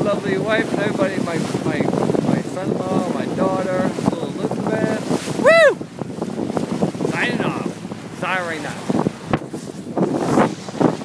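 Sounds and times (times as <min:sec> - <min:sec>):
wind buffeting microphone: 0:00.0 - 0:11.0
man whooping: 0:05.4 - 0:05.8.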